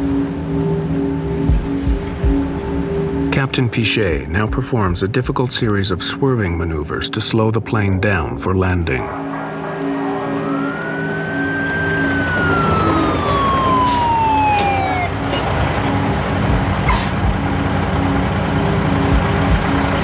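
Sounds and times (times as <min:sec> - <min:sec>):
low rumbles: 0:00.0 - 0:06.1, 0:10.2 - 0:20.0
tense music drone: 0:00.0 - 0:20.0
emergency siren wailing: 0:09.0 - 0:20.0.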